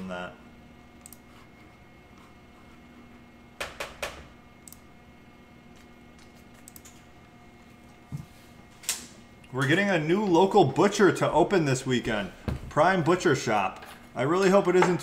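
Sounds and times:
faint steady hum: 0:00.0 - 0:15.0
sharp clicks: 0:04.6 - 0:04.9.

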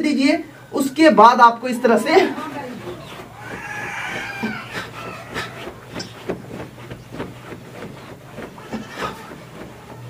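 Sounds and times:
animal calls: 0:01.8 - 0:10.0.

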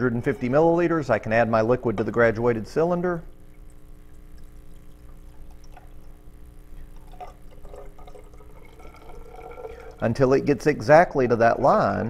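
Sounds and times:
water trickling into glass cylinder: 0:03.2 - 0:10.6.

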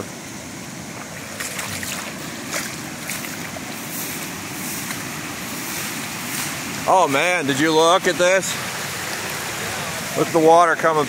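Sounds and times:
floodwater rushing: 0:00.0 - 0:11.0.

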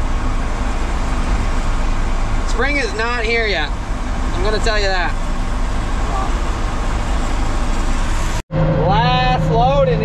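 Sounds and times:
truck engine idling: 0:00.0 - 0:10.0.

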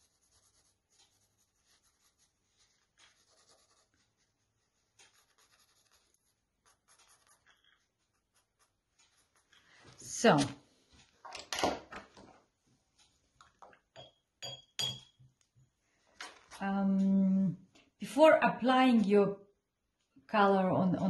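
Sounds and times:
pencil scratching on paper: 0:00.0 - 0:09.6.

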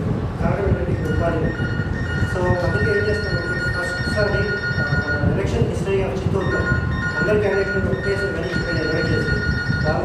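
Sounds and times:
man speaking: 0:00.4 - 0:10.0
high-pitched tone: 0:01.0 - 0:05.5, 0:06.3 - 0:10.0.

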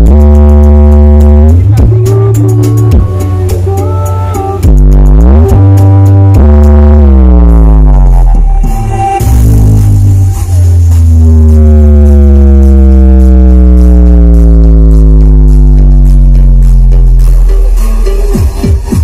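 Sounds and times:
heavy bass: 0:00.0 - 0:19.0
loud dance remix music: 0:00.0 - 0:19.0
buzzing synth drone sliding down: 0:04.6 - 0:17.2.

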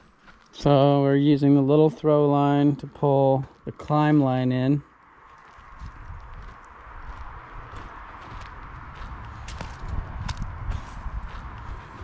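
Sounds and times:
footsteps crunching on dirt: 0:00.0 - 0:12.0.

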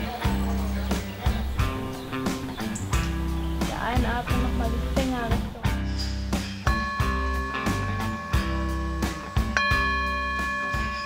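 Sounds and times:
background music with steady beat: 0:00.0 - 0:11.0
singing bowl ringing: 0:06.7 - 0:11.0.

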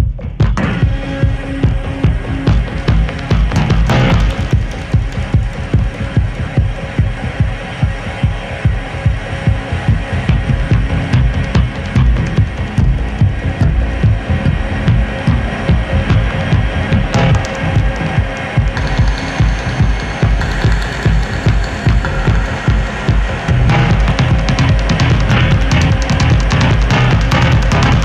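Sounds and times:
electronic kick beat with bass: 0:00.0 - 0:28.0.

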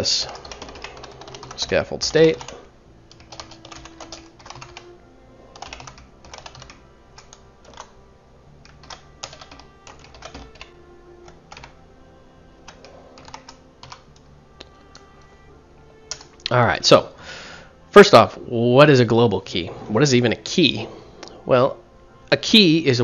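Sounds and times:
computer keyboard typing: 0:00.0 - 0:04.9, 0:05.5 - 0:07.9, 0:08.6 - 0:11.8, 0:12.7 - 0:14.2, 0:16.1 - 0:16.3.

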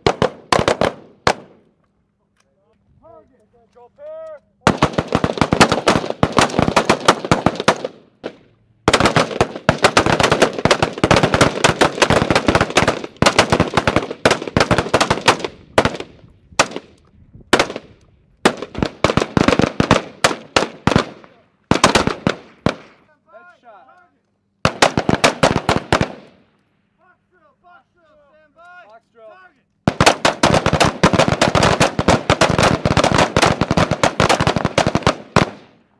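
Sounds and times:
rifles firing in a volley: 0:00.0 - 0:01.6, 0:04.6 - 0:23.1, 0:24.6 - 0:26.5, 0:29.8 - 0:35.8.

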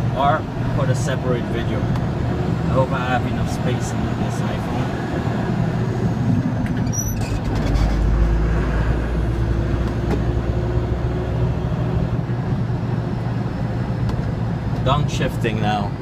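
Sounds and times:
road rumble: 0:00.0 - 0:16.0
truck engine drone: 0:00.0 - 0:16.0.

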